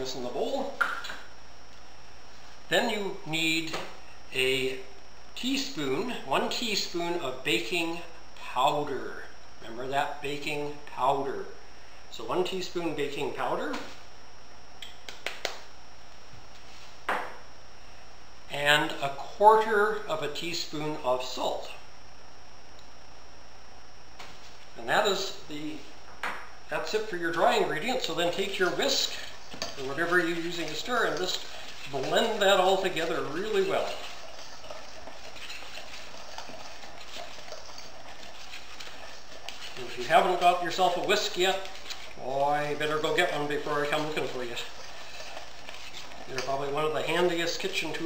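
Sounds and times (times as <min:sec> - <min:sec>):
whisk scraping a metal bowl: 0:27.4 - 0:48.0.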